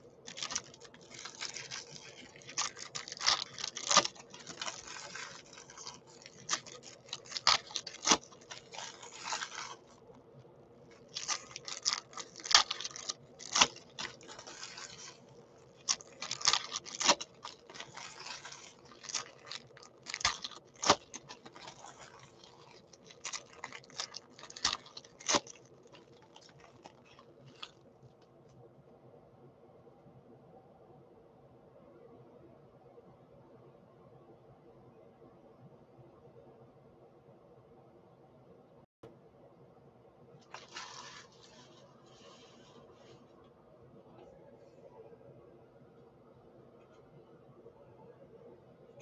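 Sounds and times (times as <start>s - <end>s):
foil wrappers tearing and crumpling: 0.3s - 10.0s, 10.9s - 27.8s, 40.5s - 41.8s.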